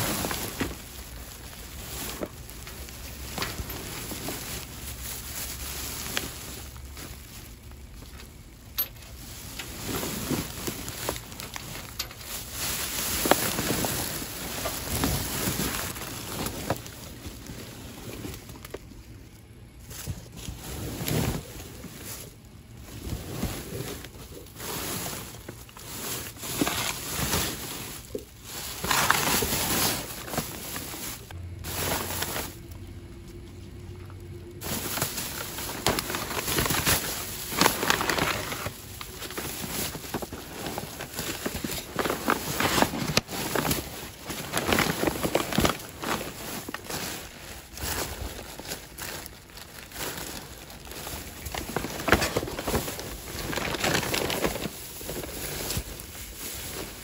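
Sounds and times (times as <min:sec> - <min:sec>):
plastic bags crinkling: 0:00.0 - 0:57.0.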